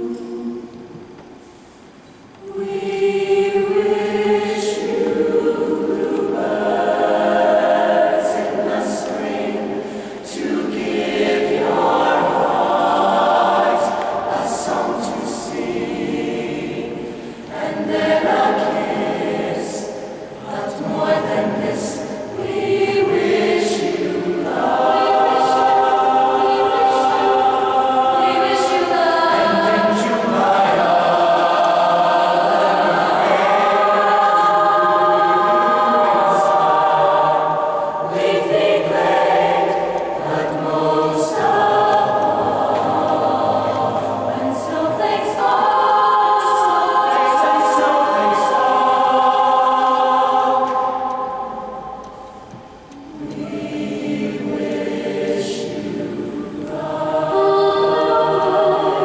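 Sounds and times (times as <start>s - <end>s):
mixed choir singing in harmony: 0.0s - 59.0s.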